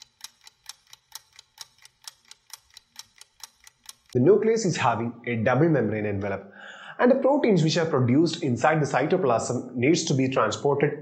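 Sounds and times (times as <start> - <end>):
clock-like ticking: 0.0 - 4.2.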